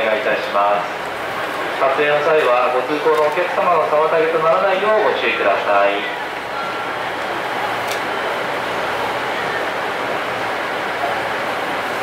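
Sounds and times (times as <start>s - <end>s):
station platform rush: 0.0s - 12.0s.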